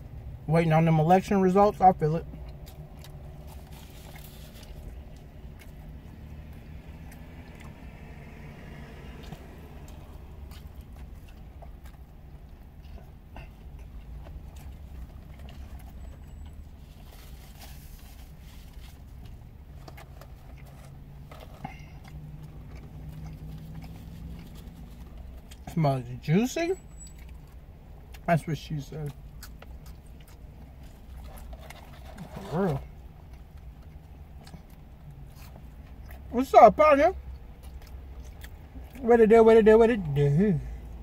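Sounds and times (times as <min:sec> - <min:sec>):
low hum inside car: 0:00.0 - 0:41.0
people chewing: 0:02.2 - 0:25.8, 0:27.0 - 0:36.3, 0:37.2 - 0:39.0.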